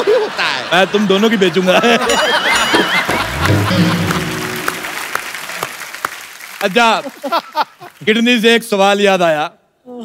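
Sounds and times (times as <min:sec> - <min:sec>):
audience applauding: 0:02.9 - 0:08.2
short music sting: 0:03.2 - 0:05.0.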